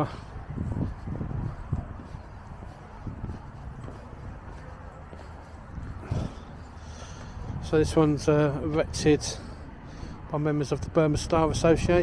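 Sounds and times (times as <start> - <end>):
footsteps on stone paving: 0.0 - 9.6
low outdoor rumble: 0.0 - 12.0.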